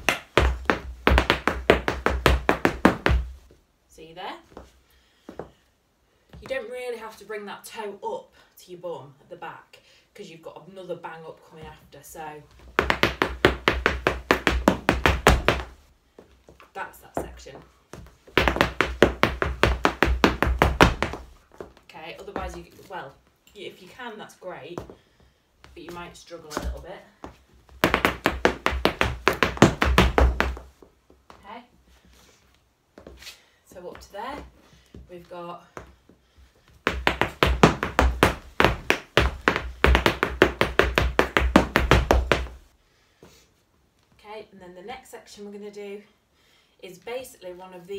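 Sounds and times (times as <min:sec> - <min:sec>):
hard shoes tapping on floor mat: 0:00.0 - 0:03.5, 0:12.5 - 0:22.9, 0:25.6 - 0:31.4, 0:33.9 - 0:42.7.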